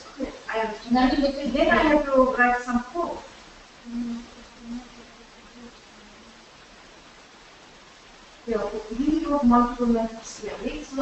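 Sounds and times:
person humming low: 0:03.8 - 0:06.4.

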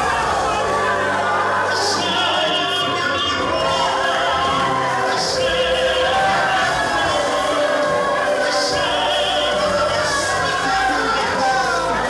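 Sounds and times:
singer on a microphone: 0:00.0 - 0:12.0
voices singing worship music: 0:00.0 - 0:12.0.

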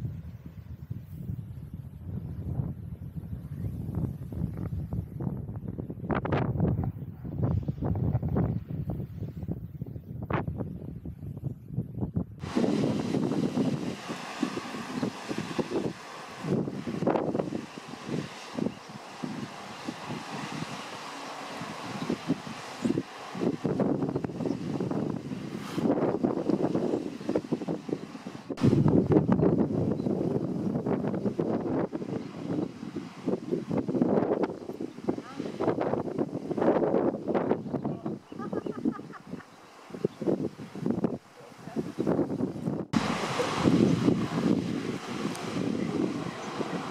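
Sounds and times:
wind buffeting microphone: 0:00.0 - 0:46.9
surf breaking on rocks: 0:12.4 - 0:27.8, 0:42.9 - 0:46.9.

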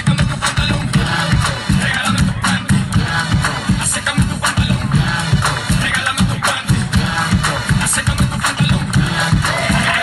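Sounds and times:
hip hop dance music: 0:00.0 - 0:10.0.

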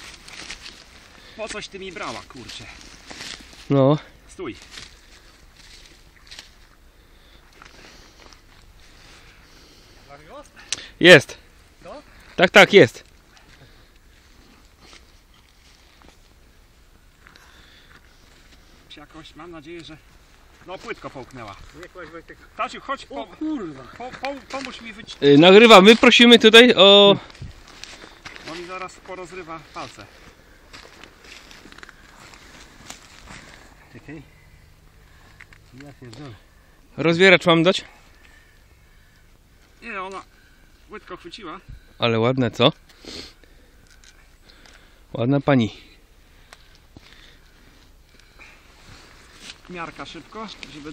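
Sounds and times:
rustling on dry grass and leaves: 0:00.0 - 0:42.0, 0:42.8 - 0:50.9.

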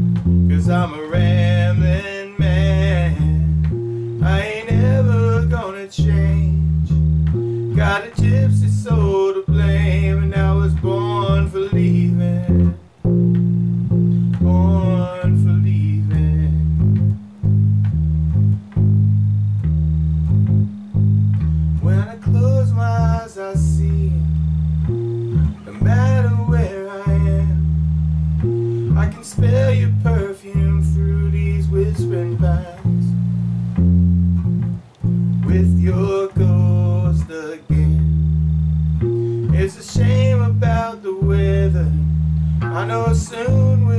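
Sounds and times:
electric bass guitar: 0:00.0 - 0:43.9
wavering lead melody: 0:00.0 - 0:43.9.

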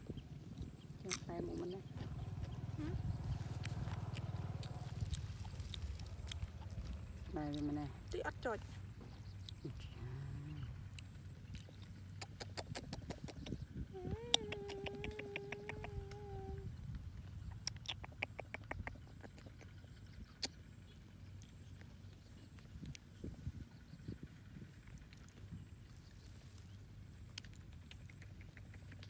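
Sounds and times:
quick soft mouth clicks: 0:12.1 - 0:13.6, 0:14.3 - 0:16.2, 0:17.4 - 0:19.6, 0:27.3 - 0:29.0.

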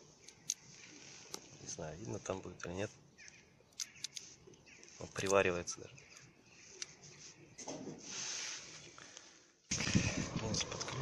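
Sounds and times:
jacket sleeve rustling on microphone: 0:06.6 - 0:09.0.

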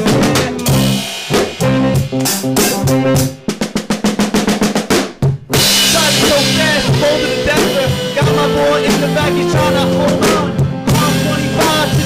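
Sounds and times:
snare drum fill: 0:00.0 - 0:09.2
live band playing: 0:00.0 - 0:12.0.

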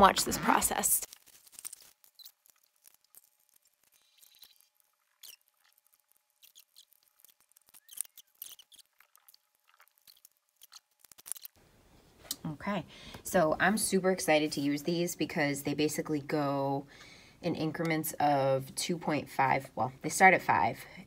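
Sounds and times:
plastic wrapping crinkling: 0:00.0 - 0:11.6
small clicks and crackles: 0:01.0 - 0:11.6.

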